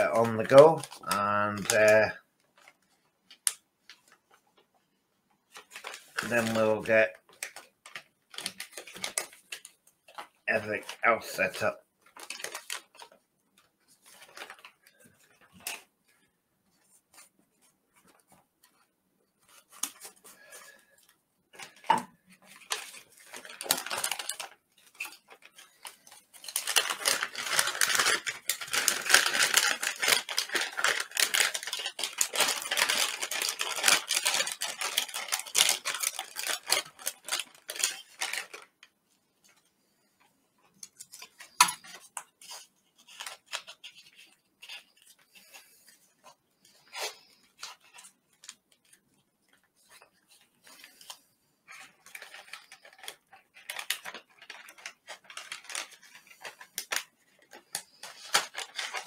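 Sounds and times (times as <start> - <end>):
plastic and foil pouches crinkling: 0.0 - 4.7, 5.4 - 17.4, 18.0 - 59.0.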